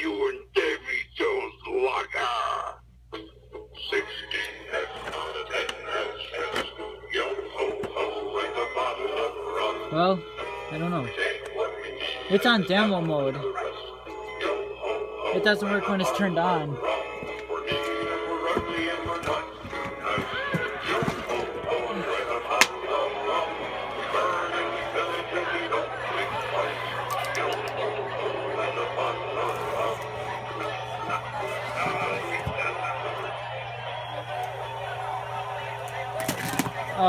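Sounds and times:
recorded voice through small speaker: 12.2s - 13.6s.

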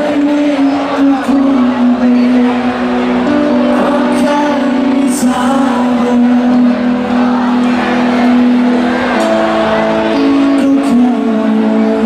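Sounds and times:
live rock band: 0.0s - 12.0s.

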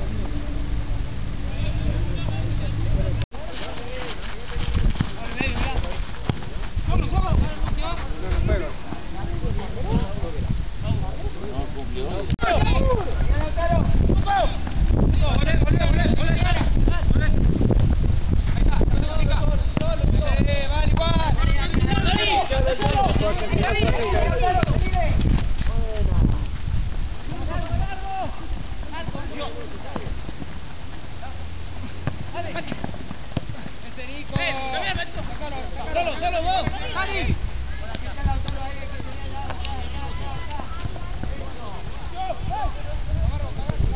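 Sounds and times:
wind buffeting microphone: 0.0s - 43.9s
people shouting: 12.4s - 14.6s, 27.4s - 28.5s, 38.9s - 40.9s
voices shouting: 12.4s - 16.6s, 20.8s - 25.2s, 34.4s - 43.1s.

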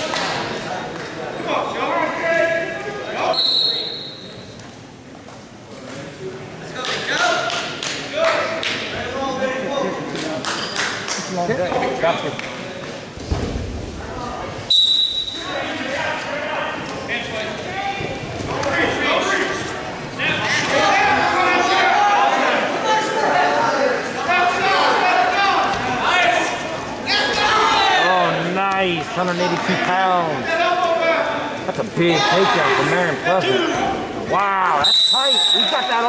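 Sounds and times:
voices echoing in a gym: 0.0s - 36.0s
shrill referee whistle blasts: 3.3s - 4.3s, 14.7s - 15.4s, 34.8s - 36.0s.

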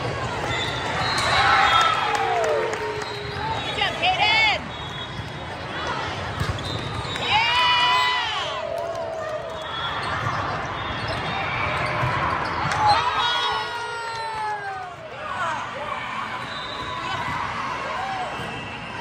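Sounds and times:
players and spectators shouting: 7.2s - 19.0s.

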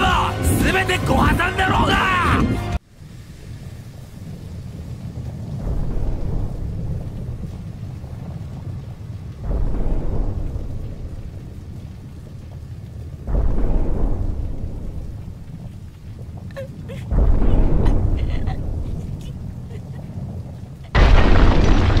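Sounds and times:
deep explosion rumbling: 3.8s - 22.0s.

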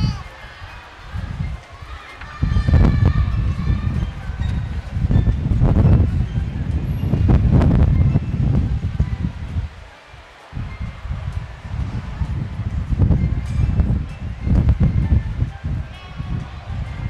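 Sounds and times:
faint voices: 0.0s - 17.0s
wind buffeting microphone: 0.0s - 17.0s.

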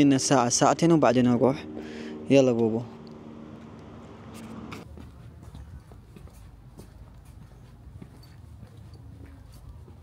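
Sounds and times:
footsteps on concrete: 4.3s - 10.0s.

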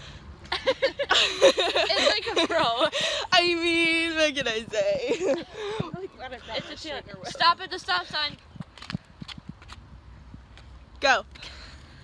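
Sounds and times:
faint footsteps on pavement: 1.6s - 12.0s.

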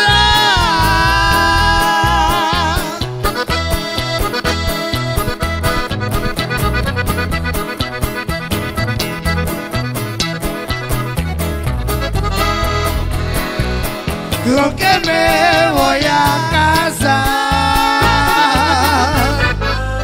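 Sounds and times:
accordion runs: 0.0s - 20.0s
bass and drum beat: 0.0s - 20.0s.

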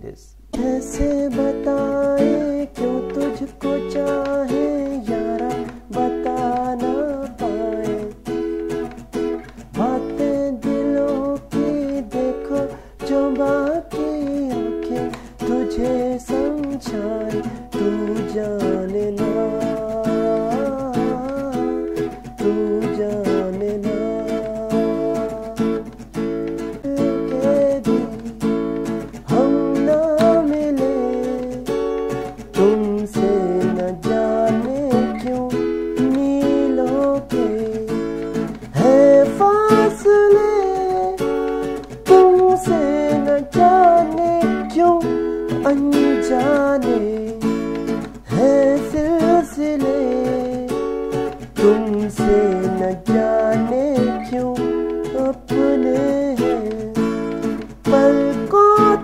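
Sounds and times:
acoustic guitar strumming: 0.4s - 59.0s.

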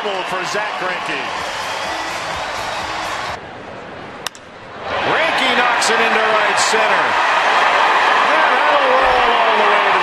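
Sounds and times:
ballpark crowd noise: 0.0s - 10.0s
music over stadium speakers: 1.1s - 3.4s.

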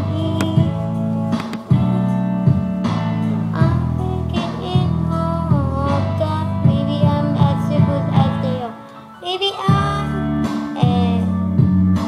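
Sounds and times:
strummed guitar backing track: 0.0s - 8.6s.

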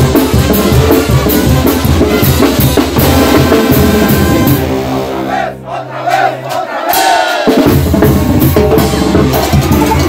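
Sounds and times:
brass band low chord: 0.0s - 9.6s
people shouting together: 4.0s - 7.6s.

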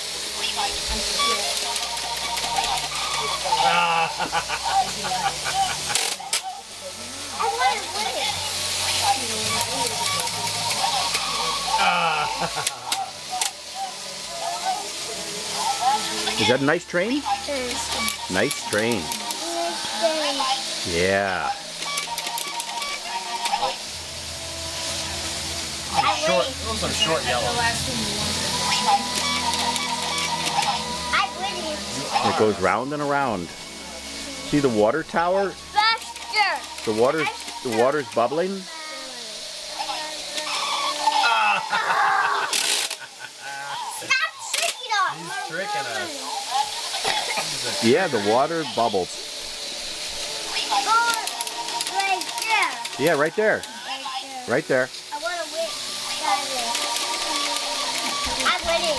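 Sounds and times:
toy electric train hissing: 0.0s - 58.9s
faint voices: 0.2s - 21.8s
young children squealing: 40.5s - 42.5s.

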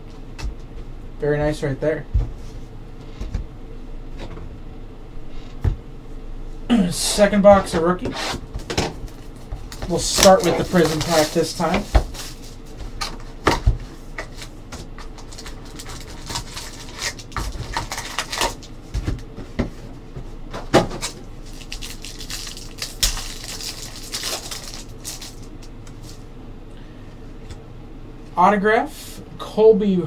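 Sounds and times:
cardboard and wrapper rustling: 9.1s - 19.2s, 21.0s - 26.2s.

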